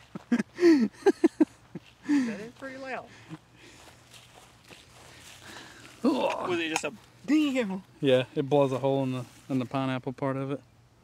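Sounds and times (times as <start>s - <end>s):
footsteps on grass: 0.0s - 0.6s, 1.2s - 8.0s.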